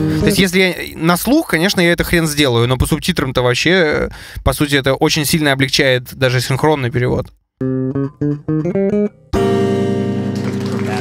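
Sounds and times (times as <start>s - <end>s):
instrumental music held chord: 7.6s - 11.0s.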